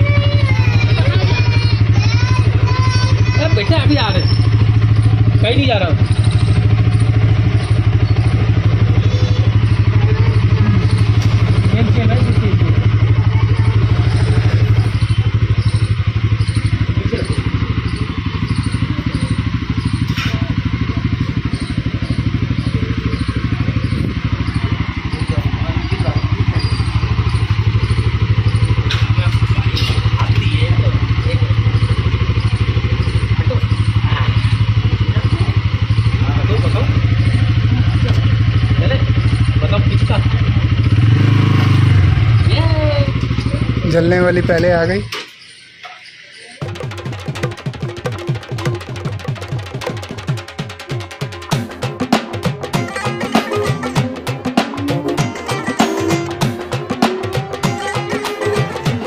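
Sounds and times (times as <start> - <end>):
motorcycle engine idling: 0.0 - 59.0.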